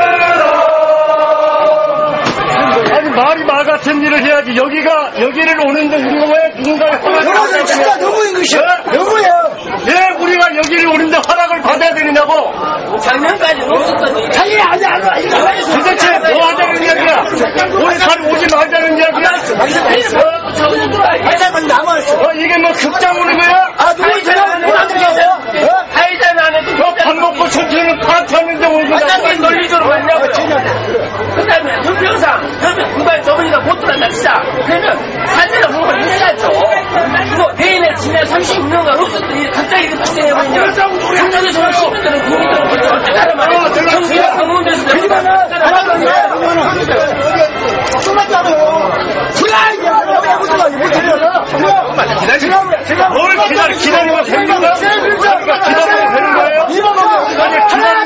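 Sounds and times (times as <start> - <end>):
men talking over one another: 0.0 - 58.0.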